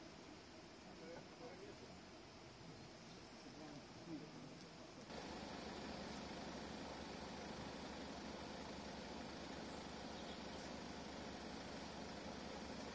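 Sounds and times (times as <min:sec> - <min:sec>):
outdoor hiss: 0:00.0 - 0:12.9
vehicle engine idling: 0:05.1 - 0:12.9.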